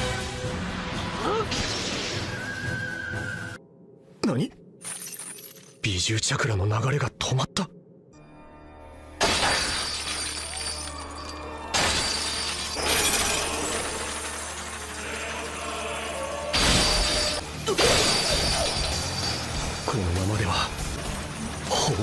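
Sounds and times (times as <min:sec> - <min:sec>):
dramatic background music: 0:00.0 - 0:04.0, 0:06.5 - 0:22.0.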